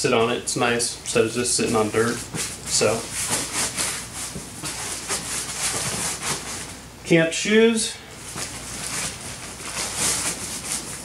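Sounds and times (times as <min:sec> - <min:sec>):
backpack fabric rustling: 0:02.3 - 0:06.8, 0:08.2 - 0:11.0.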